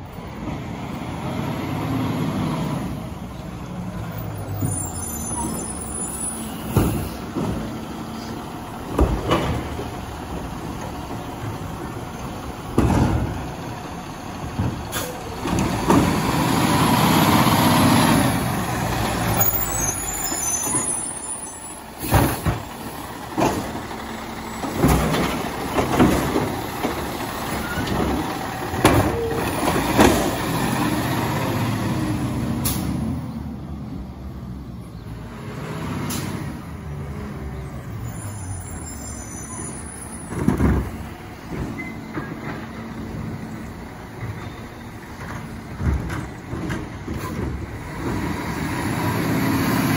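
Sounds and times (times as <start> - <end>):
garbage truck diesel engine revving: 0.0 - 39.0, 39.6 - 49.9
carts knocking and banging: 6.6 - 8.0, 8.8 - 11.9, 12.6 - 17.9, 22.0 - 31.4, 40.2 - 43.5, 44.1 - 49.9.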